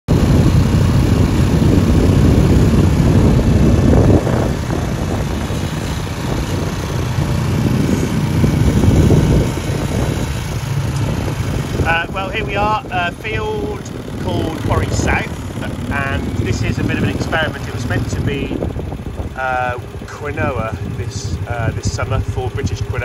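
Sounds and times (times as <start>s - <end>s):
quad bike engine rumble: 0.1s - 23.0s.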